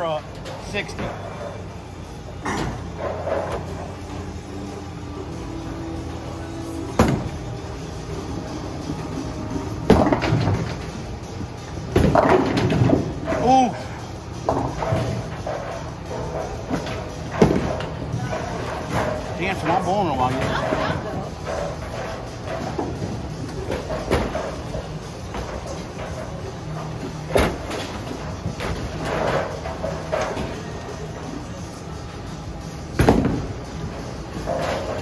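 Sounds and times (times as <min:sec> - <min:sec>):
background music: 0:01.1 - 0:35.0
bowling balls rolling: 0:05.5 - 0:13.5, 0:14.2 - 0:31.3
bowling balls striking pins: 0:06.9 - 0:07.5, 0:08.8 - 0:11.1, 0:11.8 - 0:13.5, 0:14.4 - 0:19.6, 0:20.2 - 0:30.8, 0:32.9 - 0:35.0.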